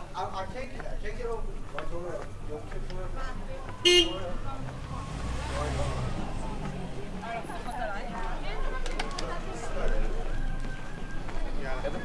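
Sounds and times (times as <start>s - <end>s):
people talking: 0.0s - 10.6s
car engine running: 3.8s - 8.6s.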